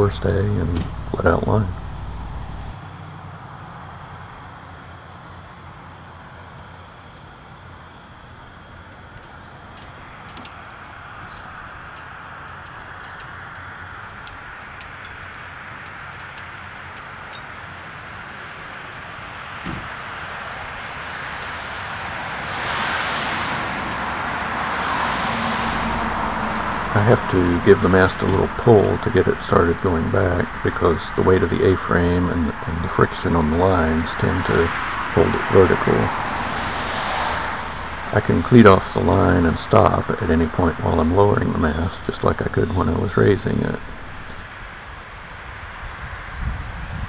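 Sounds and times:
steady rushing noise: 0.0 - 2.8, 8.9 - 47.0.

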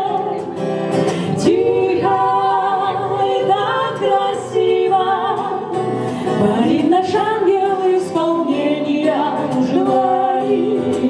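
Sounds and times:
women singing in harmony: 0.0 - 0.6, 1.2 - 11.0
acoustic guitar: 0.0 - 11.0.

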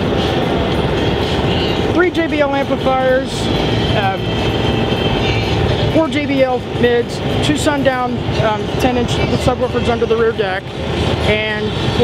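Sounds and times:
low rumbling noise: 0.0 - 12.0.

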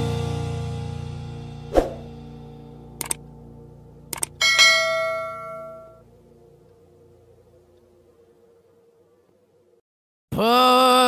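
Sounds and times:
quick clicks: 3.0 - 3.2, 4.1 - 4.4
bright bell-like chime: 4.4 - 6.0.

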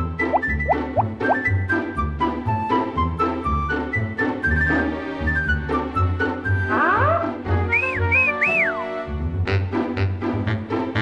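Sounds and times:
cartoon music with pulsing bass: 0.0 - 11.0
whistled notes: 7.6 - 8.9.

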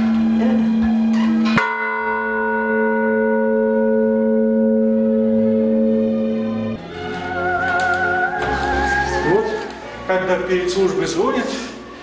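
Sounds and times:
church bells ringing: 1.4 - 6.8.

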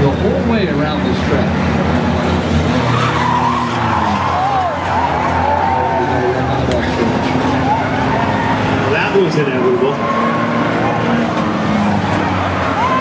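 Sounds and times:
race car engines droning: 0.0 - 13.0
tyres squealing on asphalt: 0.0 - 13.0.

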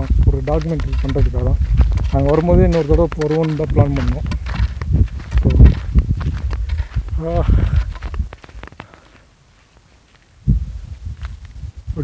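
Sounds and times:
wind buffeting microphone: 0.0 - 8.9, 10.4 - 12.0.

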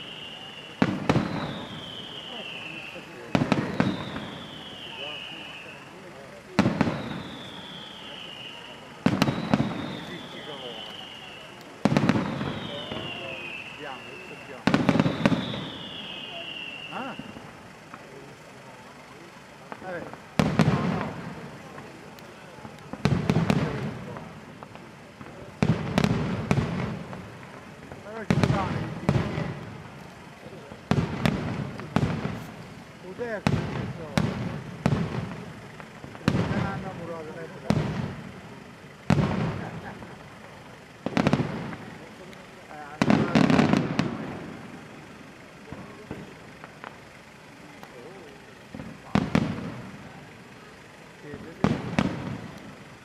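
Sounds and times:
firework shells bursting: 0.0 - 53.0.

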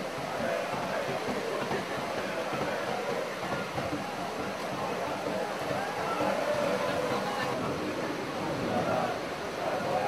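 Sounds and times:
heavy rain: 0.0 - 10.0.

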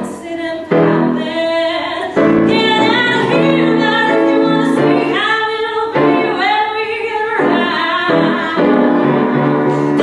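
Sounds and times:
piano accompaniment: 0.0 - 10.0
woman singing a ballad: 0.0 - 10.0.

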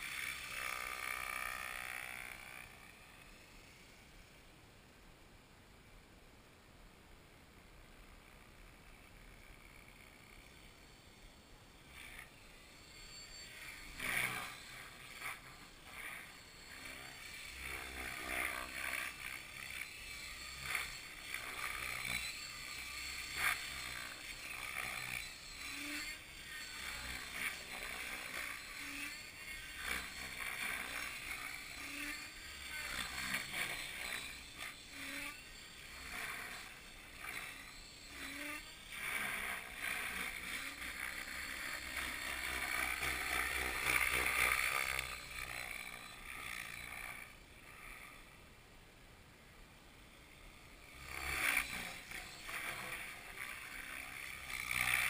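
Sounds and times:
model helicopter rotor whine: 0.0 - 4.7, 7.6 - 55.0.

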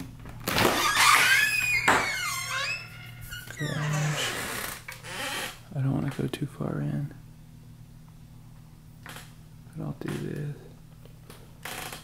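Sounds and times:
door hinge squealing: 0.6 - 5.6.

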